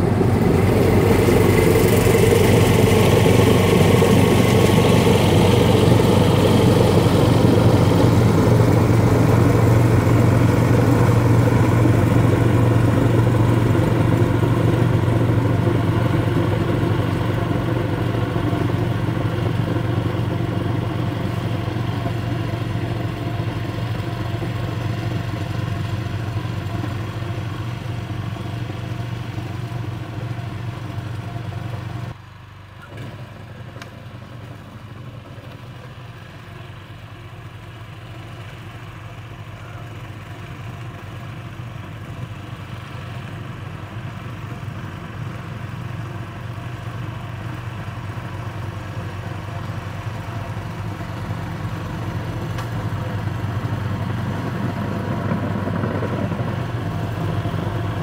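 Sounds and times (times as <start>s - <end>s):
snowblower engine running: 0.0s - 58.0s.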